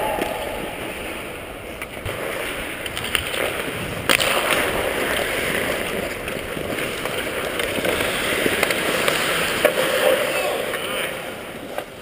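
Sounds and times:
skate blades scraping ice: 0.0 - 12.0.

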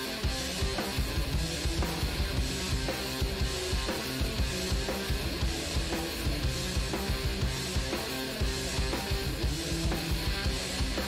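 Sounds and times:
drums hitting steady rhythm: 0.0 - 11.0
progressive rock music: 0.0 - 11.0.

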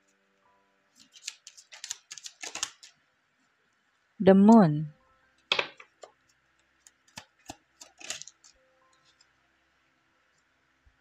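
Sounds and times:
cards sliding: 1.0 - 2.9, 6.8 - 8.5
cards clicking and tapping: 1.0 - 3.0, 5.5 - 9.3.

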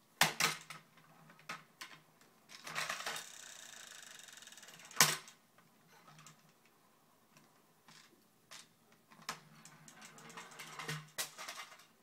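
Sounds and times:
toy car gears whirring: 2.6 - 5.0.

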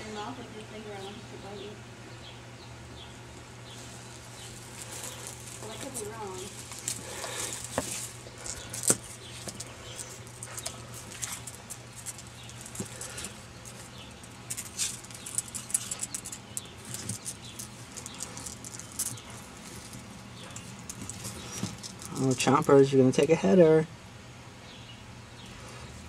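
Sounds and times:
rustling in dry grass: 3.6 - 22.1
turtle claws scraping on rocks: 4.4 - 22.8.

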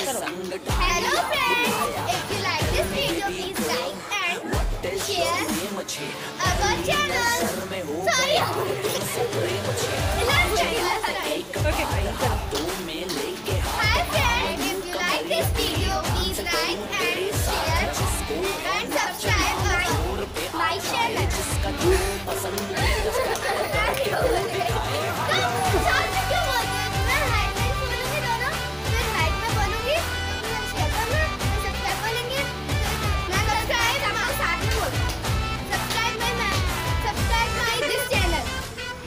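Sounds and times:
background music: 0.0 - 39.0
girls talking: 0.0 - 39.0.

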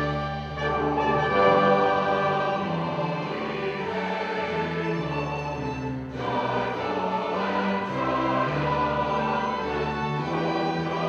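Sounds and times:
mixed choir singing: 0.0 - 11.0
orchestra of strings and horns: 0.0 - 11.0.

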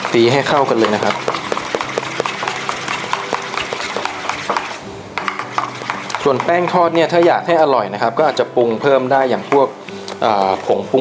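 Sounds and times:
utensil beating batter in metal bowl: 0.0 - 11.0.

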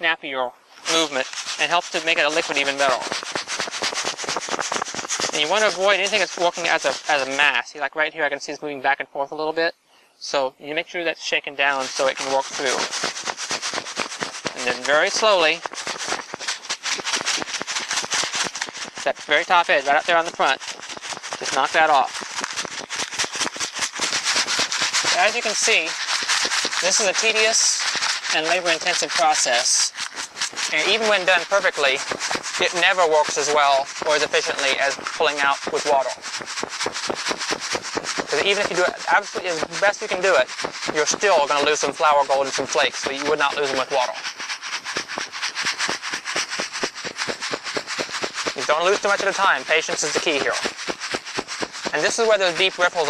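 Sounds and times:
sand and gravel rattling in pan: 0.8 - 8.4, 10.9 - 53.0.

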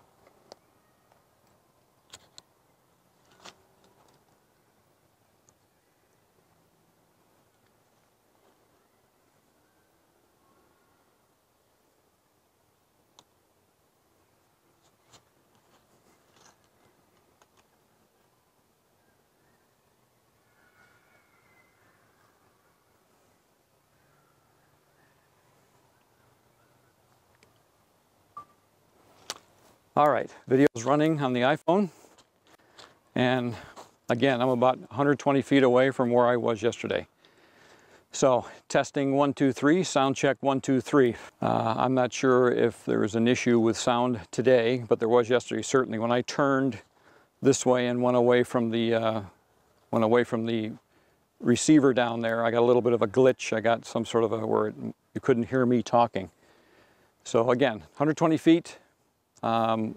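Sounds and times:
faint microphone hiss: 0.0 - 59.9.

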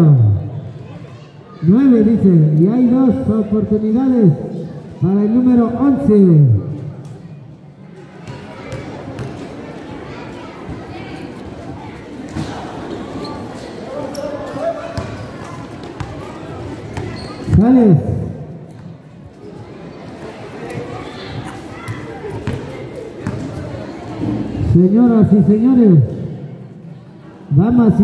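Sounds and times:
spectators chattering: 0.0 - 28.0
basketball bouncing on concrete: 8.2 - 9.4, 22.3 - 23.5.

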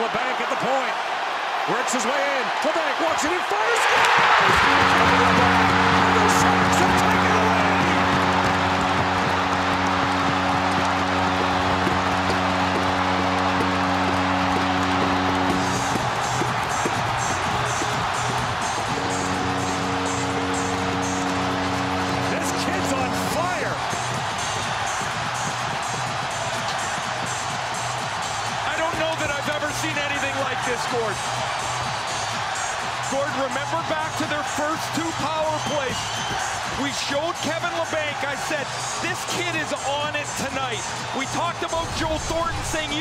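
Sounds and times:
arena crowd roaring and cheering: 0.0 - 43.0
goal horn blasts: 4.4 - 18.2.

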